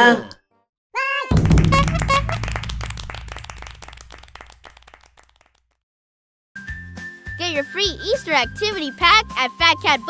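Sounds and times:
low held musical note: 1.3s - 4.6s
hand clapping: 1.3s - 5.6s.

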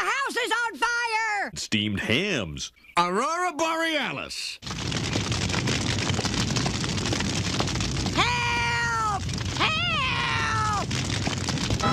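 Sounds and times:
cartoon fire crackling: 4.5s - 11.9s
high drawn-out cries: 8.2s - 10.8s.

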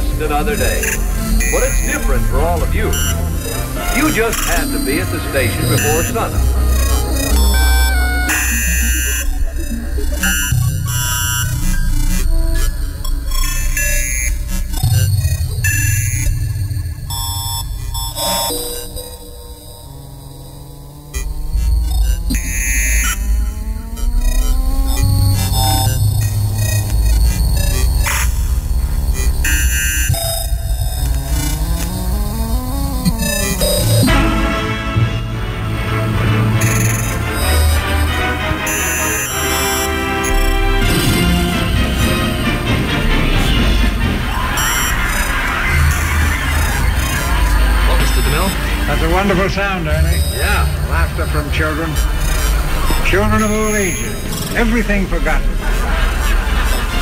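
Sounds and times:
gliding pitched tone: 0.0s - 34.5s
glitchy electronic fragments: 0.0s - 35.1s, 35.9s - 57.0s
heavy bass: 0.0s - 57.0s.

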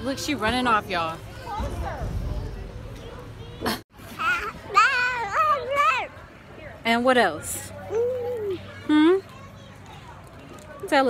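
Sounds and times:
toddler babbling: 7.8s - 9.2s.

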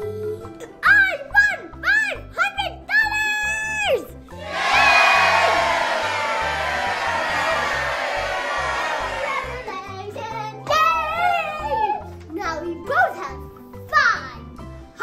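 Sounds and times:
background music: 0.0s - 15.0s
crowd cheering: 4.4s - 9.8s.

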